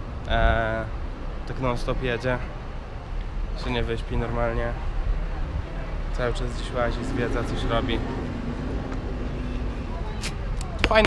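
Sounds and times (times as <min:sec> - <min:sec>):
buses rumbling: 0:00.0 - 0:11.0.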